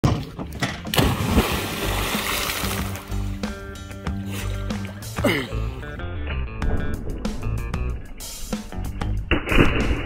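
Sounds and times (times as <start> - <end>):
music: 0.0 - 10.0
splash into water: 0.9 - 3.1.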